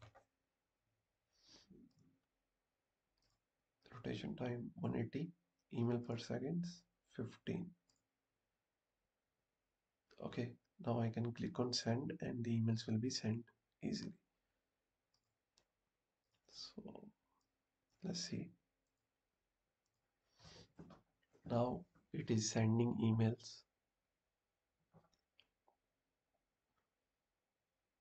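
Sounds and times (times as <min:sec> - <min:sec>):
man speaking: 0:03.9 - 0:07.7, 0:10.2 - 0:14.1, 0:18.0 - 0:18.5, 0:21.5 - 0:23.6.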